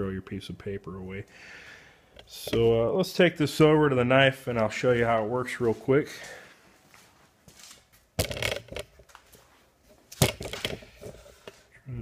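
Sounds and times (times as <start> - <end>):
clattering and rattling: 8.2 - 9.1, 10.2 - 11.6.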